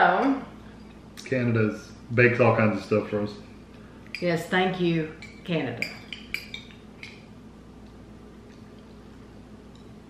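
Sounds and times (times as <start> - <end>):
spoons clinking against bowls: 5.1 - 7.3.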